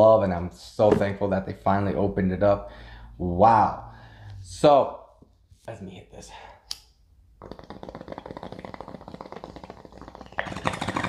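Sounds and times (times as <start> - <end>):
water gurgling in a bong: 7.4 - 11.0.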